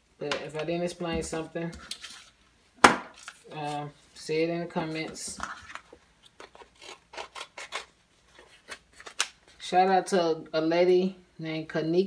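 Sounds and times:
scissors snipping paper: 0:06.6 - 0:07.9.

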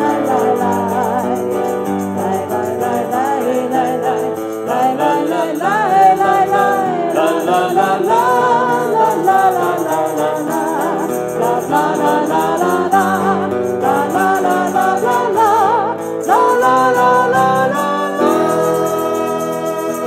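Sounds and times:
electric guitar: 0:00.0 - 0:20.0
tambourine jingling: 0:00.0 - 0:20.0
woman and man singing: 0:00.0 - 0:20.0.

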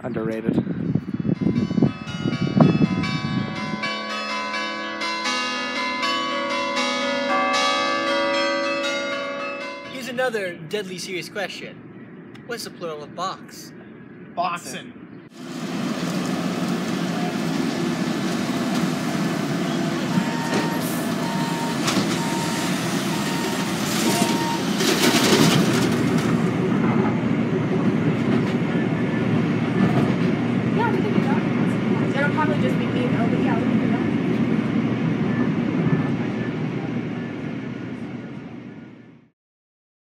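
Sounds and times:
train rumble and rattle: 0:00.0 - 0:10.4, 0:15.4 - 0:38.9
dump truck running: 0:15.4 - 0:39.1
road milling machine running: 0:15.4 - 0:39.2
repeated beep: 0:20.1 - 0:24.7.

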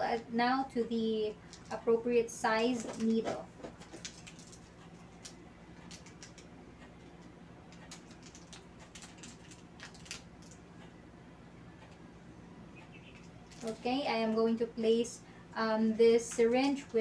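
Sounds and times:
steady low hum: 0:00.0 - 0:17.0
plastic syringe clicks and rustles: 0:02.7 - 0:10.6, 0:13.1 - 0:13.8.

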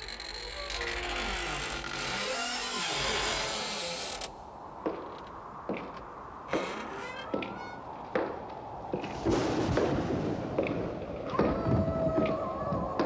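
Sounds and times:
door creaking open: 0:00.0 - 0:04.4, 0:06.5 - 0:07.9.

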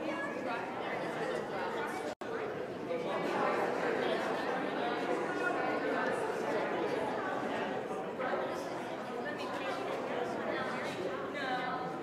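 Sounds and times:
many people chattering: 0:00.0 - 0:12.0.

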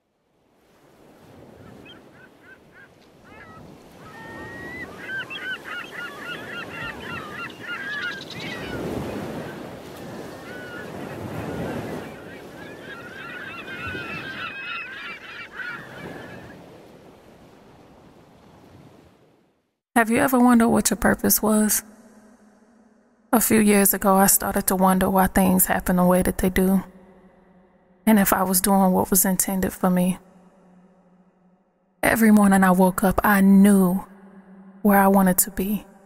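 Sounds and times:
surf washing: 0:00.5 - 0:19.4
flock of birds calling: 0:01.6 - 0:16.6.

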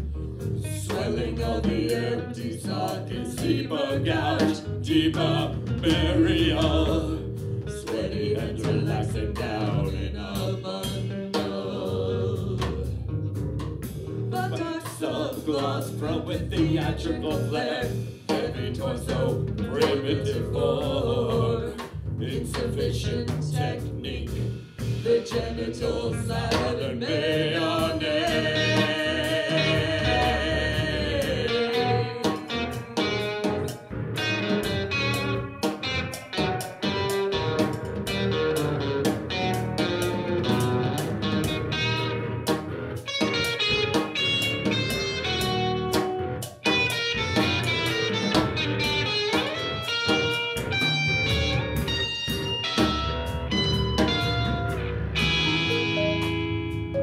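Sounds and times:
rock band playing: 0:00.0 - 0:14.8, 0:26.4 - 0:57.0
electric guitar: 0:27.6 - 0:57.0.

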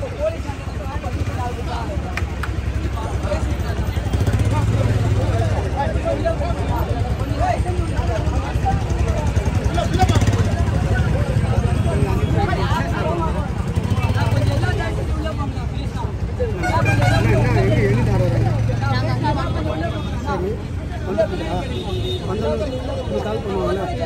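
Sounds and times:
crowd babble: 0:00.0 - 0:24.0.

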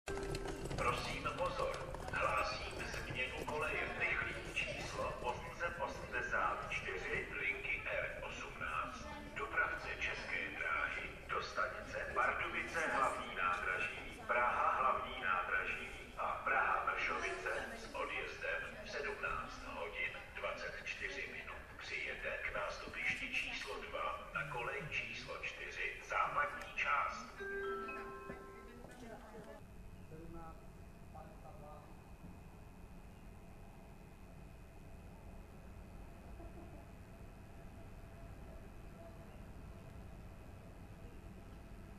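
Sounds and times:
station loudspeaker announcement: 0:00.1 - 0:29.6
announcement chime: 0:27.4 - 0:28.9.

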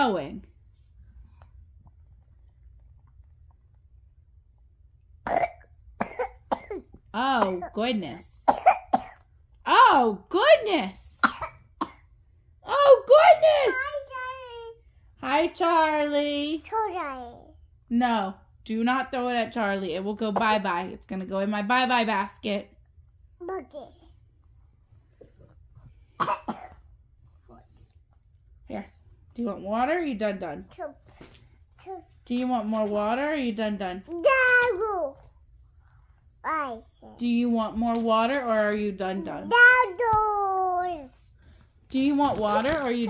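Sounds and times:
toddler coughing: 0:05.3 - 0:07.7, 0:08.4 - 0:09.3, 0:11.2 - 0:12.1, 0:26.2 - 0:26.8.

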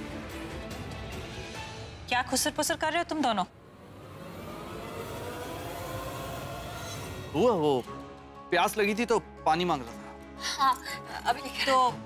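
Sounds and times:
dramatic music drone: 0:00.0 - 0:08.7.

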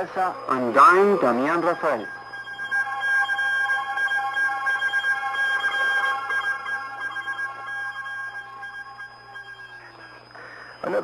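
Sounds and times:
radio reception hiss: 0:00.0 - 0:02.3, 0:09.7 - 0:11.0.

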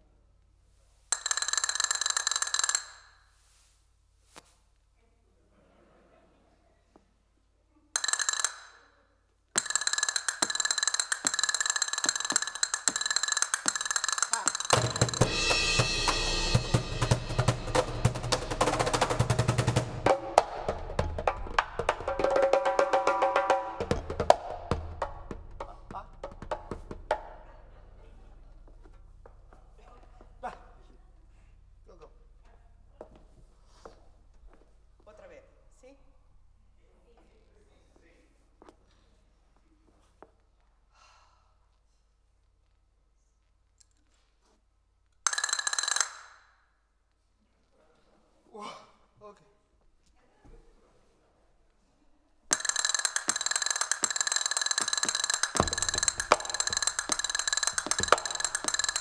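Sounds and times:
cymbal rolls: 0:09.6 - 0:28.1, 0:52.5 - 0:59.0
fast dense drumming: 0:10.5 - 0:27.7, 0:52.5 - 0:59.0
heavy low drum strokes: 0:14.7 - 0:27.2.

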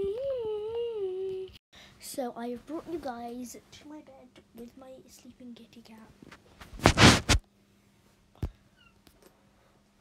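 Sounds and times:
girl humming: 0:00.0 - 0:01.6.

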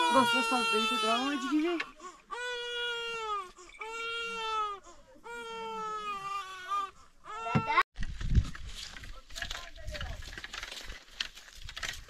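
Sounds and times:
infant crying: 0:00.0 - 0:07.9.

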